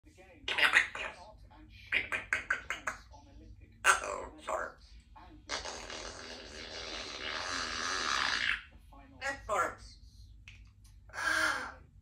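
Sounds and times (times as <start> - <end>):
parrot raspy vocalising: 0.4 - 1.3, 1.9 - 3.1, 3.8 - 4.8, 5.5 - 9.8, 11.1 - 12.0
parrot chattering calls: 0.5 - 1.2, 1.9 - 3.1, 3.8 - 4.8, 5.5 - 9.8, 11.1 - 11.8.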